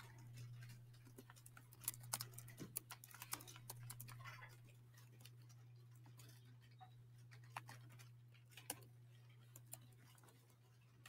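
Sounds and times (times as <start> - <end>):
low electrical hum: 0.0 - 11.0
laptop keyboard keystrokes: 1.3 - 4.2.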